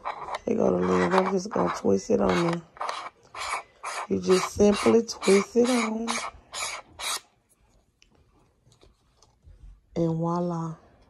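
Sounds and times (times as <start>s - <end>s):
lens attachment rubbing and clicking: 0.0s - 7.2s.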